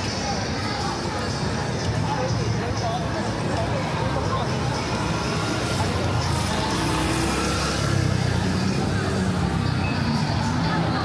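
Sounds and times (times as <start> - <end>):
motor scooter passing: 4.6 - 11.0.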